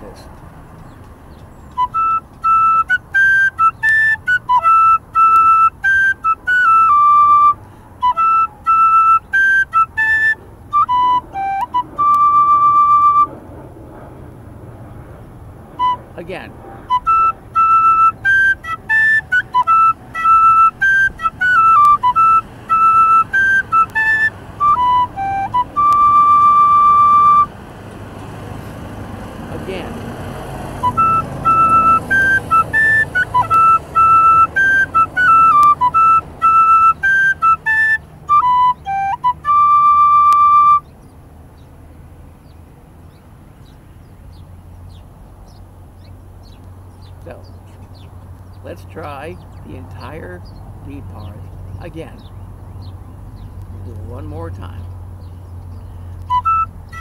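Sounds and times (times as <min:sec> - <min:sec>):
tin whistle playing folk tune: 0:01.7 - 0:13.4, 0:15.8 - 0:16.2, 0:16.9 - 0:27.5, 0:30.8 - 0:40.9, 0:56.2 - 0:57.0.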